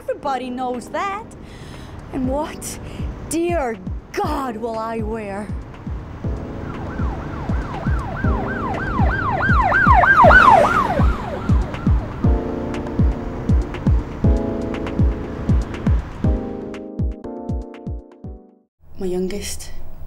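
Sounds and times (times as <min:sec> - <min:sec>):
music with steady beat: 0:04.9 - 0:18.6
emergency siren yelping: 0:06.3 - 0:12.6.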